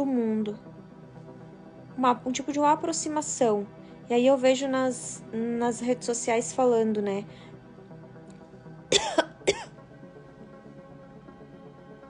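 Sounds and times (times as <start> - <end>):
faint background music: 0.0 - 12.0
woman coughing: 8.9 - 9.7.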